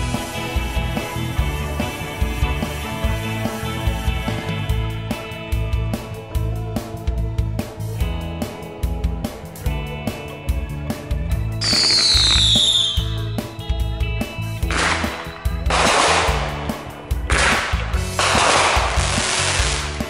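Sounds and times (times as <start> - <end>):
background music with a beat: 0.0 - 20.0
firework crackling bursts: 11.6 - 13.1, 14.6 - 20.0
firework whistle falling in pitch: 11.6 - 13.3.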